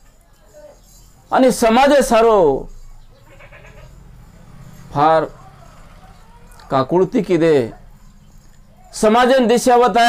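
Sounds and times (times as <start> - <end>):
man speaking: 1.3 - 2.7, 6.7 - 7.8, 8.9 - 10.0.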